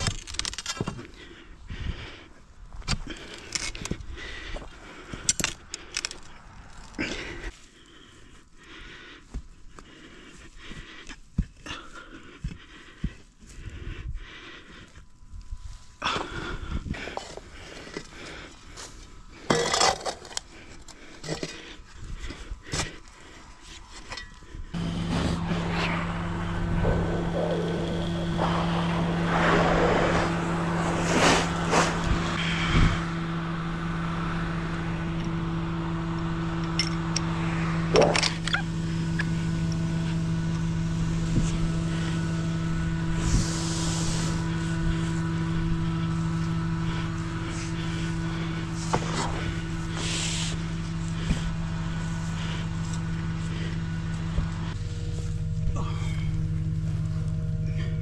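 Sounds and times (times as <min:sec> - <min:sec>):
truck engine humming: 0:15.1 - 0:58.0
shovel scraping into soil: 0:26.8 - 0:32.7, 0:48.7 - 0:51.5.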